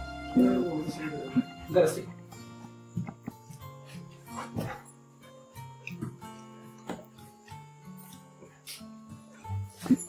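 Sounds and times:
guitar music: 0.0 - 10.0.

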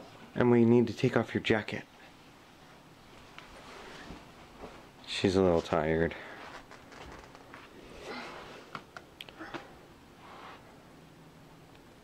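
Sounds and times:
clothing rustling: 3.0 - 8.8.

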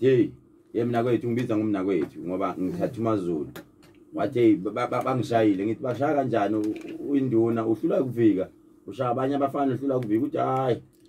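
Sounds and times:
man speaking: 0.0 - 10.9.

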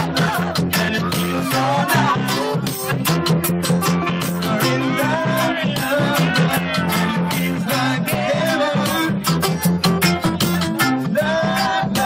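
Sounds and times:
man singing into microphone: 0.0 - 9.7, 11.0 - 12.0
acoustic guitar strumming: 0.0 - 12.0.

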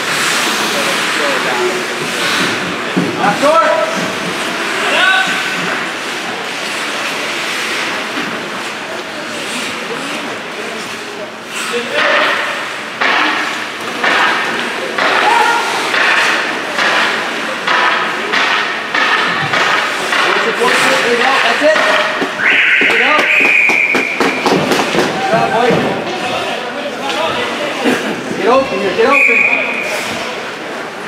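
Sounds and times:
people calling out: 15.0 - 16.0
referee's whistle: 22.4 - 24.6, 29.1 - 30.0.

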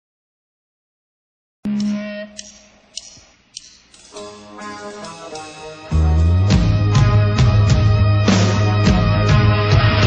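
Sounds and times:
drumsticks clicking together: 1.8 - 5.8.

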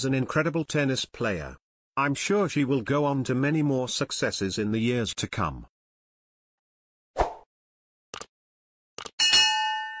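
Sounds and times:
bright bell ding: 9.2 - 10.0.

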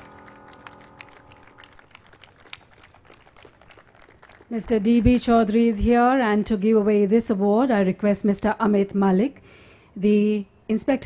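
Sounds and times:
music cue: 0.0 - 2.3.

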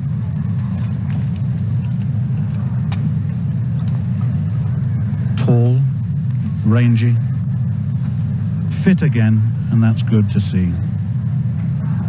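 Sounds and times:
low rumble of stadium background: 0.0 - 12.0.

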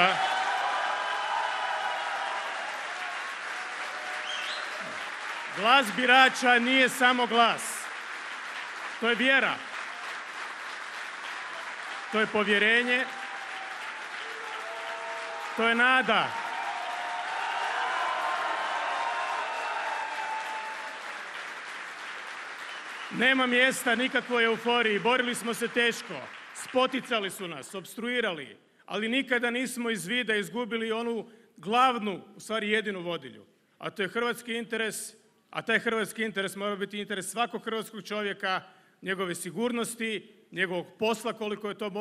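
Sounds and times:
audience applauding: 0.0 - 27.4.

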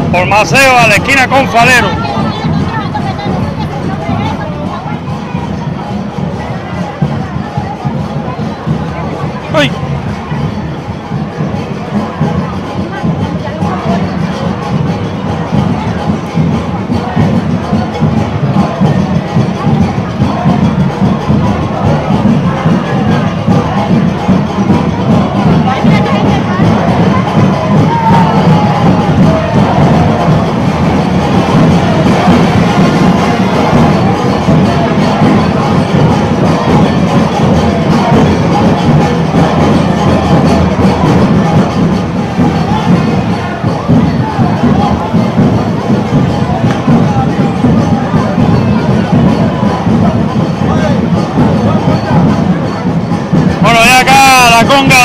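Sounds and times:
conga band percussion: 0.0 - 55.0
crowd voices and cheering: 0.0 - 55.0.

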